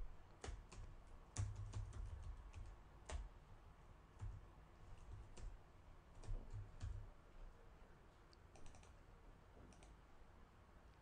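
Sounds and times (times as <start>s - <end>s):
keyboard and mouse clicks: 0.3s - 3.3s, 6.2s - 7.0s, 8.3s - 9.0s, 9.6s - 10.0s.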